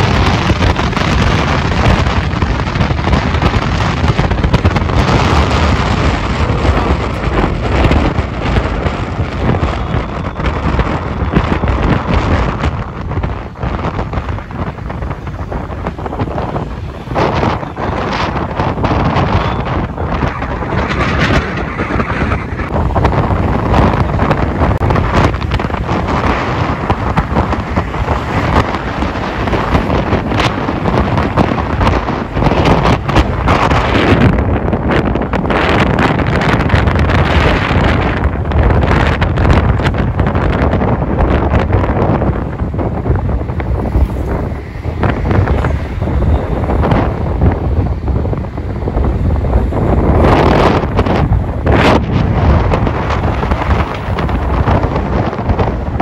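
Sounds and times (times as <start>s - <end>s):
wind buffeting microphone: 0.0s - 56.0s.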